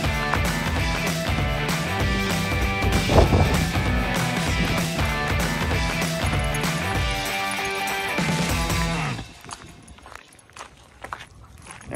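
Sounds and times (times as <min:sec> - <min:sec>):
music: 0:00.0 - 0:10.4
footsteps crunching on gravel: 0:08.4 - 0:11.9.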